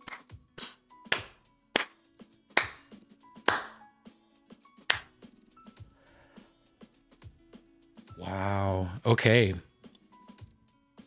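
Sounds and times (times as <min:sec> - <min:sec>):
slow hand claps: 0:00.0 - 0:03.9, 0:04.8 - 0:05.3
faint music: 0:00.0 - 0:11.0.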